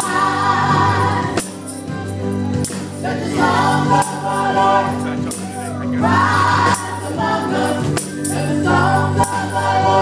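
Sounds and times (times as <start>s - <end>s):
women singing gospel in harmony: 0.0s - 1.6s, 3.0s - 5.2s, 6.0s - 10.0s
backing band playing: 0.0s - 10.0s.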